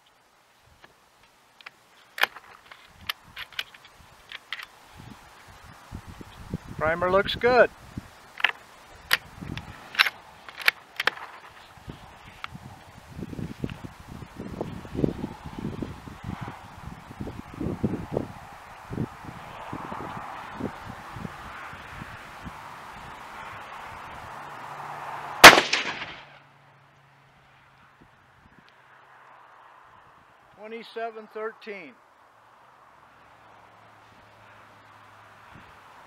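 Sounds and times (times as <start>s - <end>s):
rifle shot: 25.4s - 26.4s.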